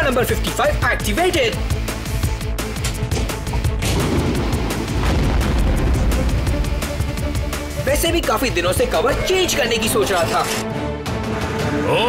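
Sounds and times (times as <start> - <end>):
cartoon bomb boom: 3.8 - 6.5.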